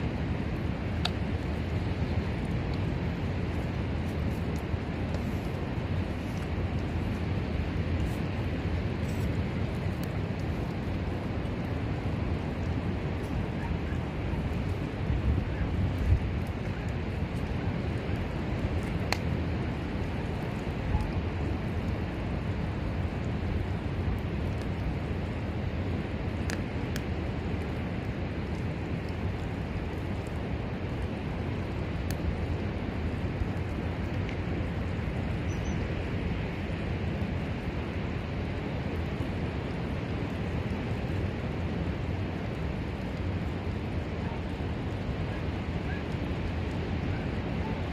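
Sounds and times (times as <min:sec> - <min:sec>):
wind rumble on microphone: 0:00.0 - 0:47.9.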